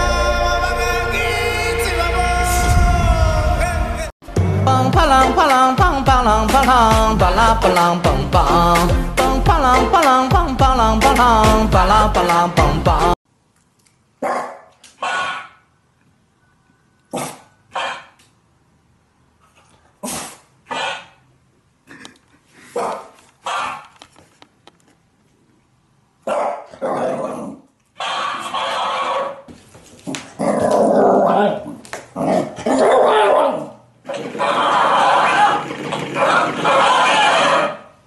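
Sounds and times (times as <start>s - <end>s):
dog giving gruff barks: 14.2s - 15.6s, 20.2s - 21.2s, 22.8s - 23.9s, 26.2s - 27.3s.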